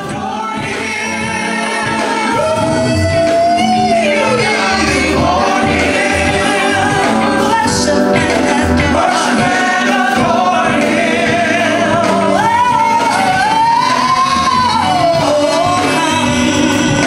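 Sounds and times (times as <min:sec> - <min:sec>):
bass line: 0:00.0 - 0:17.0
gospel choir singing: 0:00.0 - 0:17.0.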